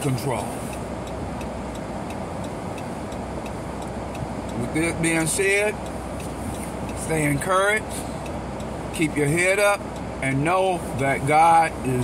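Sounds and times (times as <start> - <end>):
car cabin hum: 0.0 - 12.0
turn signal ticking: 0.0 - 12.0.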